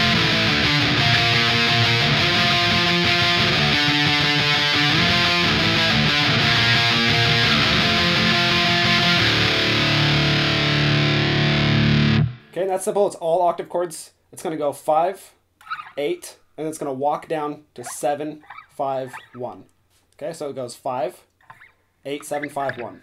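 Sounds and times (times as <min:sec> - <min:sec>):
distorted electric guitar strumming: 0:00.0 - 0:12.6, 0:22.2 - 0:23.0.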